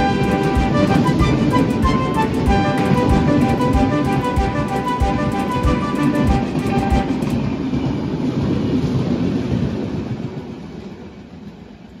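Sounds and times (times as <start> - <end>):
background music: 0.0 - 7.4
train wheels clattering: 0.0 - 11.6.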